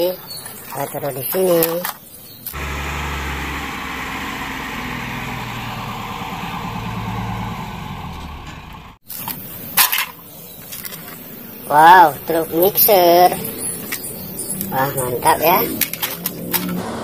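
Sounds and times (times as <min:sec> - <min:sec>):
heavy diesel engine running: 0:02.6 - 0:09.0.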